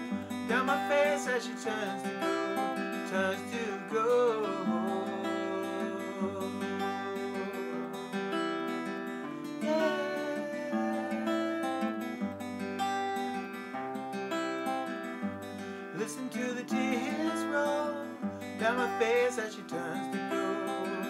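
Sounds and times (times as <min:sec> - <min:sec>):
acoustic guitar fingerstyle: 0:00.0 - 0:21.0.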